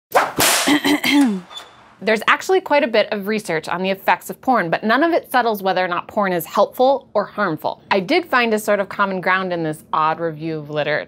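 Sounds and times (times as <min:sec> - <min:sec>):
whip crack: 0:00.1 - 0:00.8.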